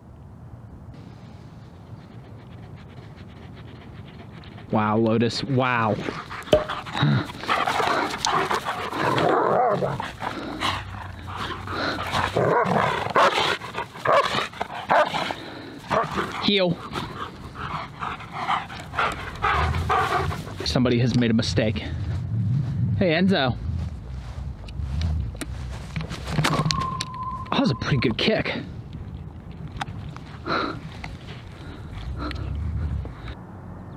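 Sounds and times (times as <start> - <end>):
dogs vocalizing while playing: 2.1 - 4.7, 6.0 - 20.7, 30.3 - 33.4
low microphone rumble: 17.1 - 33.4
steady high tone: 26.4 - 28.4.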